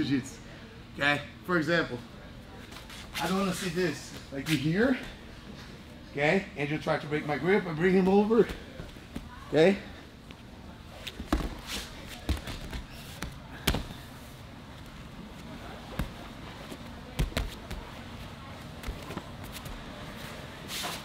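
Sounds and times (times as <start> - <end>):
bodies thudding on mats: 11.1 - 14.1, 17.1 - 17.9.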